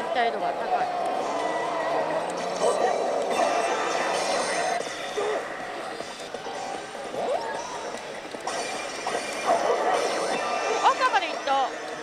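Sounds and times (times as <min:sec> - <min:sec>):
racing cars with tyre squeals: 0:01.0 - 0:10.8.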